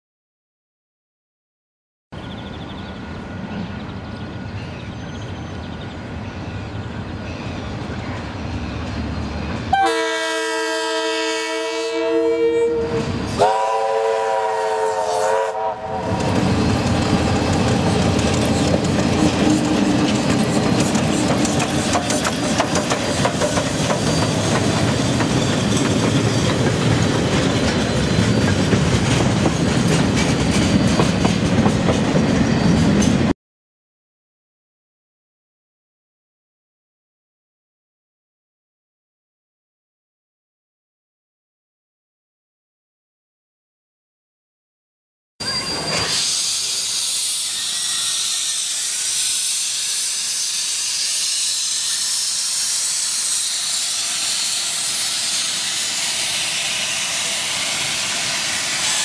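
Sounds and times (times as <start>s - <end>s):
train horn blasts: 9.7s - 16.4s
locomotive rumble: 15.6s - 33.3s
train wheel clatter: 16.1s - 33.3s.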